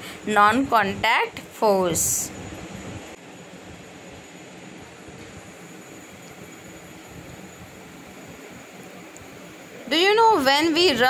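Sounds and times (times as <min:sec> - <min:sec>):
woman speaking: 0:00.3 - 0:02.4, 0:09.9 - 0:11.0.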